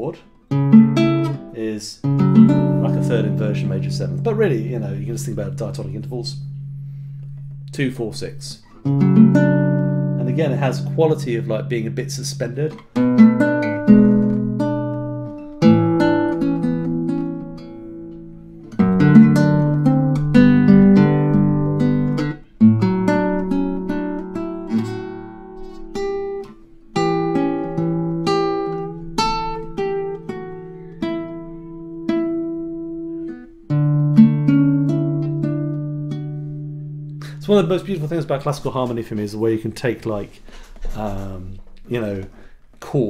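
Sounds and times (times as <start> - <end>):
classical guitar fingerstyle: 0.2 - 39.3.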